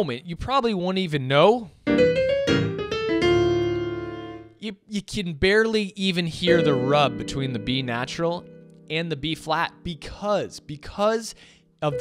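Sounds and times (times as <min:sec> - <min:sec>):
piano playing: 0:01.8 - 0:04.6, 0:06.4 - 0:11.2, 0:11.8 - 0:12.0.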